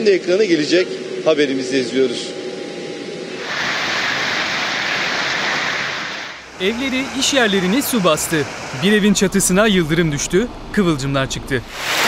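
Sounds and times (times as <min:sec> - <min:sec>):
heavy rain and hail: 0:03.4 - 0:06.4, 0:11.7 - 0:12.0.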